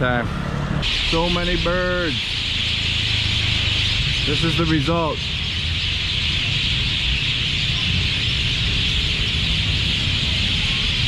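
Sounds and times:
flock of birds chattering: 0.8 - 11.0.

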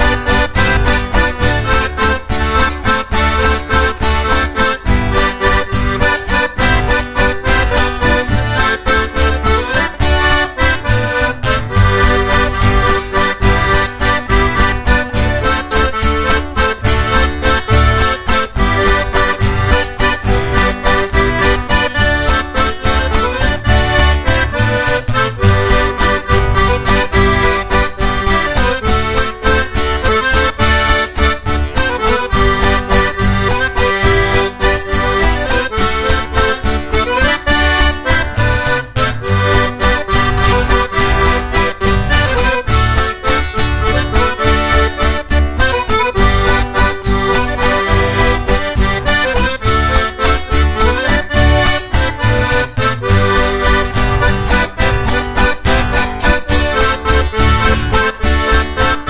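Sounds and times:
accordion band music: 0.0 - 59.0.

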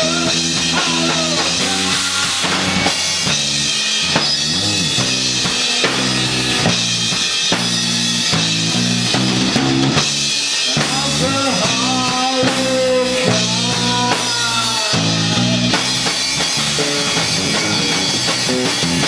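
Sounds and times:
drum kit beat: 0.0 - 19.0
electric guitar: 0.0 - 19.0.

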